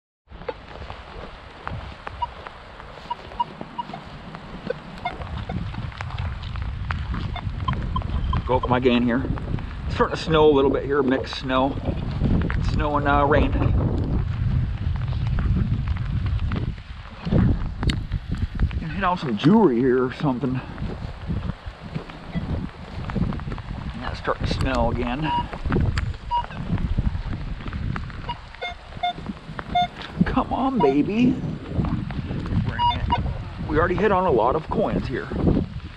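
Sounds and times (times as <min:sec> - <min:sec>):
wind rumbling on microphone: 0:00.3 - 0:35.9
metal detector beeps: 0:03.0 - 0:04.0, 0:25.3 - 0:25.5, 0:28.2 - 0:30.0, 0:30.7 - 0:31.0, 0:32.8 - 0:33.3.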